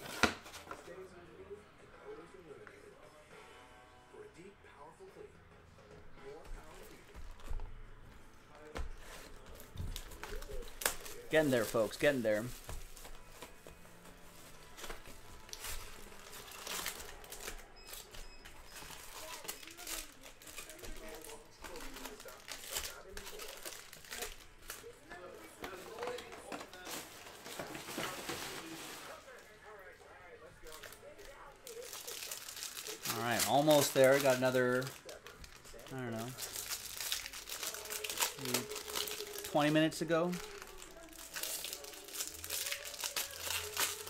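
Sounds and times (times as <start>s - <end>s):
plastic shrink wrap crinkling and tearing: 9.0s - 13.7s, 14.3s - 29.4s, 30.6s - 44.0s
cardboard box rustling: 25.6s - 29.2s.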